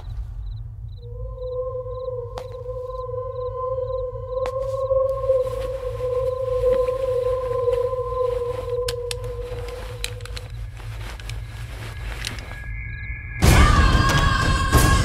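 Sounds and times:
low rumbling drone: 0.0s - 15.0s
long held tone: 1.0s - 15.0s
faint clicks: 8.6s - 11.5s.

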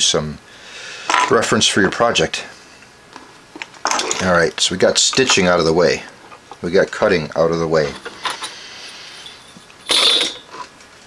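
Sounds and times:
tools scraping and clattering: 3.2s - 4.4s, 7.8s - 10.8s.

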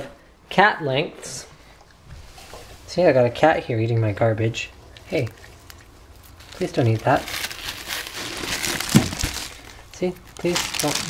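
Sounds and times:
plastic bags crinkling: 5.1s - 11.0s.

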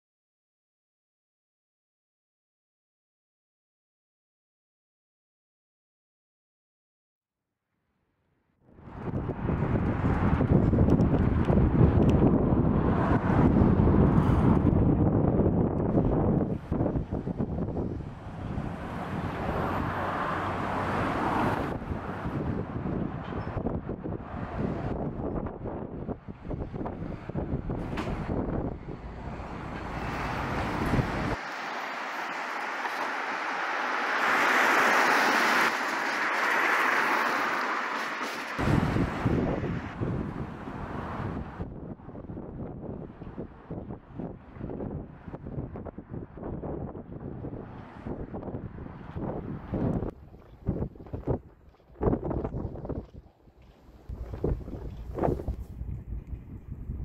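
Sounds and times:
wind buffeting microphone: 8.8s - 31.4s, 38.5s - 57.0s
wind hissing: 27.2s - 41.6s.

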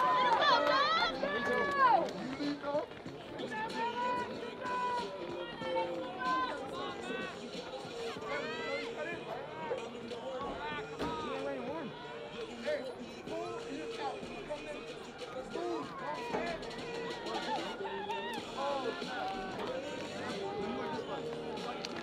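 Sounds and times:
distant crowd calls and chatter: 0.0s - 22.0s.

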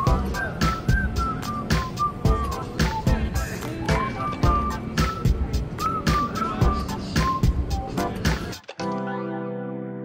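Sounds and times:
melody over steady beat: 0.0s - 8.5s.

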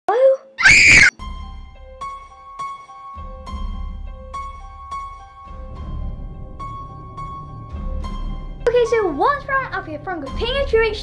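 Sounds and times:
person screaming: 0.6s - 1.1s.

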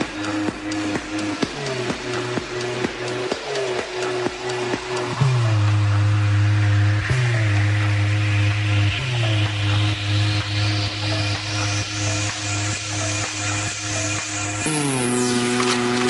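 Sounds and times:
deep sliding bass note: 13.9s - 16.0s.

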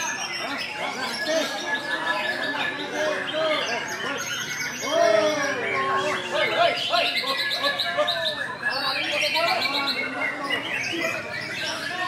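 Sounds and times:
people's voices: 0.0s - 12.0s
songbirds singing in chorus: 0.0s - 12.0s.

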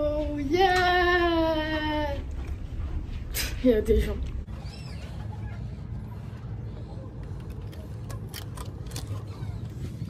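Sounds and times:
low hum inside ferry: 0.0s - 10.0s.

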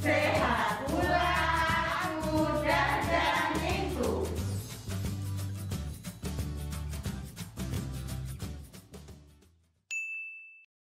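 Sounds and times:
background music: 0.0s - 9.7s
bright ding sound effect: 9.9s - 10.7s.

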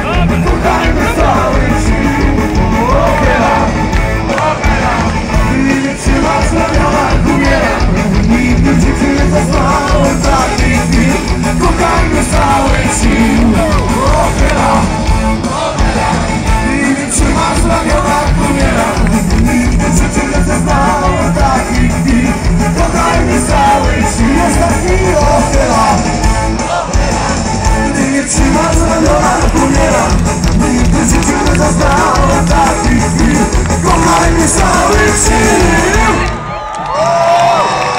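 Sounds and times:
live rock band playing: 0.0s - 36.5s
person singing: 4.6s - 36.4s.

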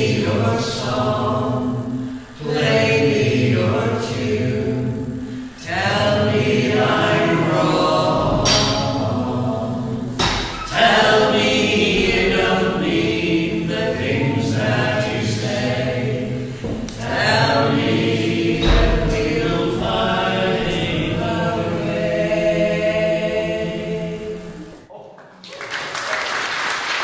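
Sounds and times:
voices singing in harmony: 0.0s - 24.9s.

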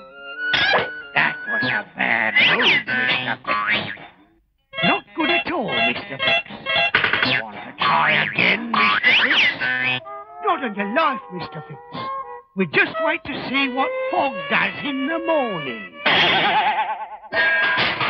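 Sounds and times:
comic cartoon music: 0.0s - 4.0s, 4.8s - 18.0s.

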